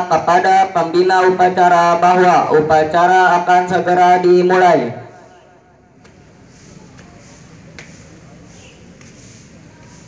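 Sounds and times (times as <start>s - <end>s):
murmur of large crowd: 0.0s - 10.0s.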